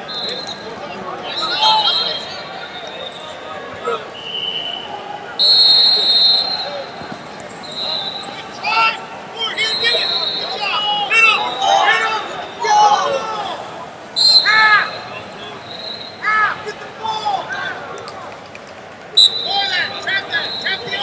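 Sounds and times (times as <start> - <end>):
fainter whistles: 0.0 - 0.7, 1.3 - 3.5, 4.1 - 6.9, 7.5 - 8.6, 9.6 - 11.7, 14.2 - 14.6, 15.6 - 16.2, 19.2 - 19.6, 20.3 - 21.0
shrill referee whistle: 0.0 - 6.9, 7.5 - 8.8, 9.5 - 13.2, 14.2 - 16.4, 19.2 - 21.0
coaches shouting: 0.0 - 18.0, 19.1 - 21.0
crowd noise: 0.0 - 21.0.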